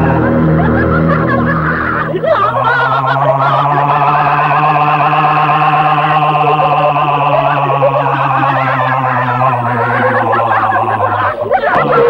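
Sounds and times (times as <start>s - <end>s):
low drone: 0.0s - 12.0s.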